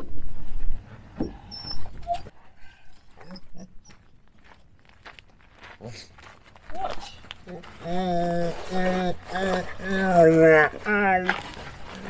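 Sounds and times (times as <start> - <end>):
dog whining: 1.2 - 2.4, 3.2 - 3.9.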